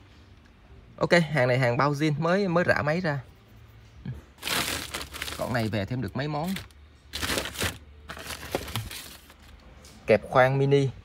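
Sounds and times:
plastic sack rustling: 0:04.4 - 0:09.6.

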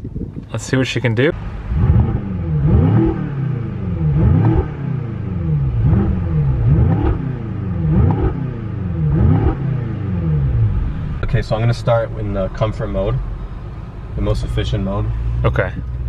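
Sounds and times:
car engine revving: 0:01.3 - 0:16.0.

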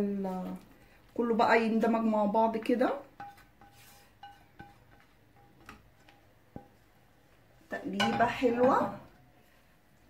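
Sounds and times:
spatula squeaking on pan: 0:03.2 - 0:05.6.

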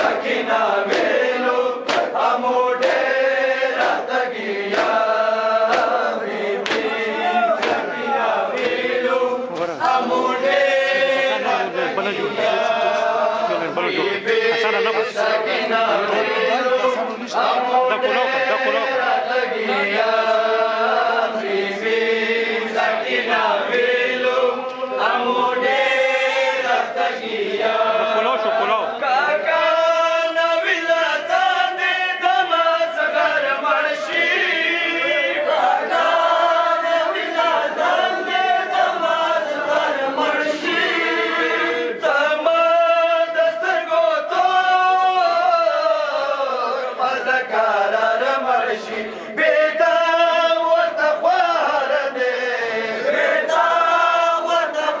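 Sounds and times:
men chanting a lament in unison: 0:00.0 - 0:55.0.

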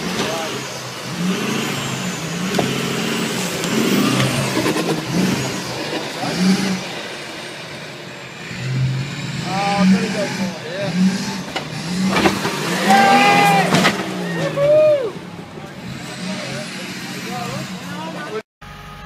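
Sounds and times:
truck engine revving: 0:00.0 - 0:19.0
voices shouting: 0:12.5 - 0:18.4.

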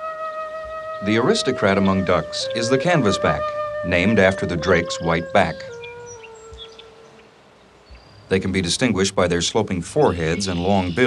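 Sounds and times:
held flute note: 0:00.0 - 0:07.2
faint high chirps: 0:00.6 - 0:08.5, 0:10.0 - 0:11.0.

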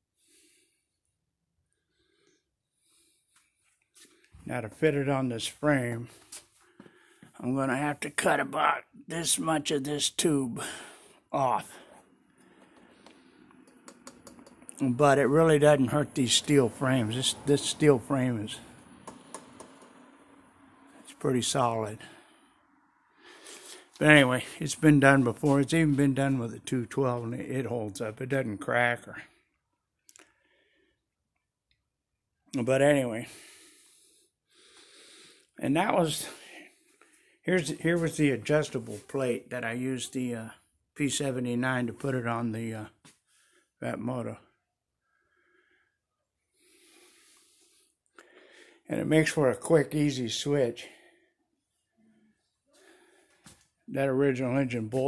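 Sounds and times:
person speaking: 0:07.4 - 0:11.9, 0:13.9 - 0:19.8, 0:23.5 - 0:29.2, 0:35.6 - 0:36.6, 0:37.4 - 0:42.9
soft breath close to microphone: 0:22.0 - 0:24.6, 0:45.1 - 0:48.9.

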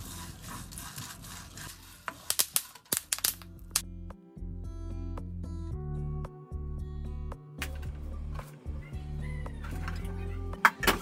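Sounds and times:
spatula scraping seeds in pan: 0:00.0 - 0:02.9
background music: 0:03.2 - 0:11.0.

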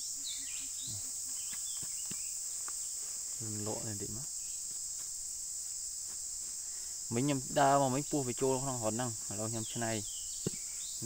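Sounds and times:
high-pitched insect drone: 0:00.0 - 0:11.0
axe chopping into dry dirt: 0:10.4 - 0:10.7.

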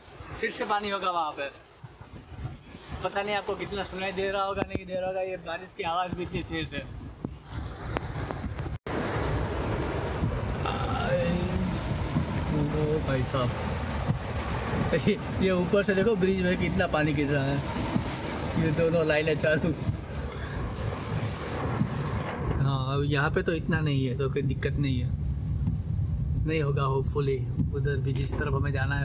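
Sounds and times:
sharp raindrop impacts: 0:07.8 - 0:22.7
heavy rain on car roof: 0:08.9 - 0:22.6
man's voice: 0:10.6 - 0:13.6, 0:18.6 - 0:19.8.

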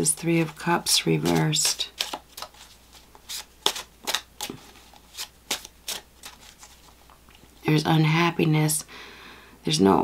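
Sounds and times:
cards being shuffled: 0:00.0 - 0:07.1.

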